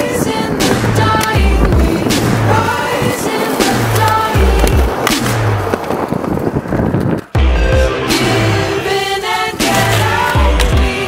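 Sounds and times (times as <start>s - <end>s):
skateboard grinding concrete: 0.0s - 11.0s
skateboard wheels rolling: 0.0s - 11.0s
music with repeating beat: 7.4s - 11.0s.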